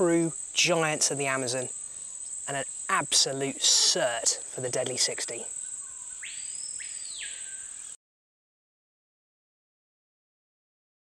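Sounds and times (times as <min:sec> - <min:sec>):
high-pitched insect drone: 0:00.0 - 0:08.0
lower swelling insect sound: 0:00.0 - 0:08.0.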